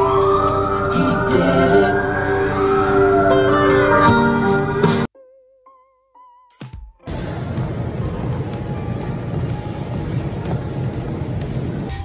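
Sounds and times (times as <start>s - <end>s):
treadmill motor and belt rumble: 7.1s - 11.9s.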